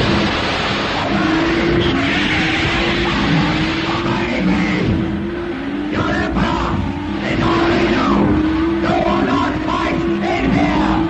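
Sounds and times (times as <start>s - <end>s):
dramatic soundtrack music: 2.7s - 11.0s.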